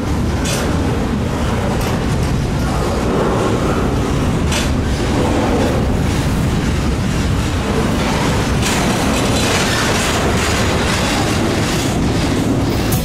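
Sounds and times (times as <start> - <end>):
train wheels rumbling on rails: 0.0 - 13.0.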